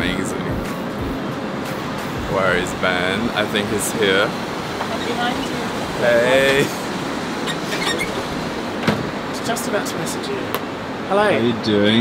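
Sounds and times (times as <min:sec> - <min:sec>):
airplane cabin drone: 0:00.0 - 0:10.5.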